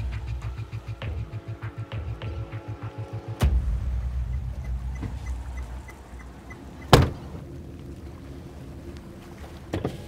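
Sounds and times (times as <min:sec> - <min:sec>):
heavy thump: 0:06.9 - 0:07.3.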